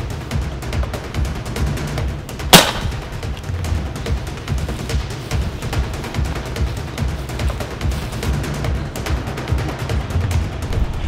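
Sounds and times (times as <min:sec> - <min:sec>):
background music with steady beat: 0:00.0 - 0:11.0
dart rifle shot: 0:02.5 - 0:03.2.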